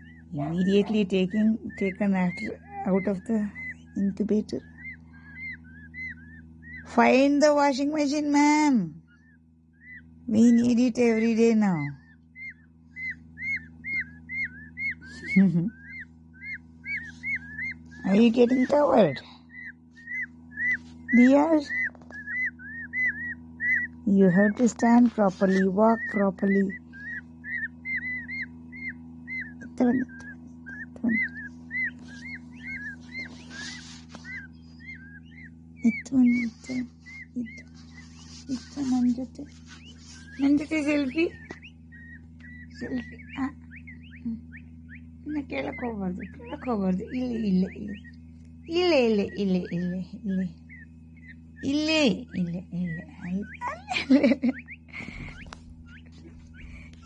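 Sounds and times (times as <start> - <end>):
chicks peeping: 0.0 - 57.0
steady low hum: 0.0 - 57.0.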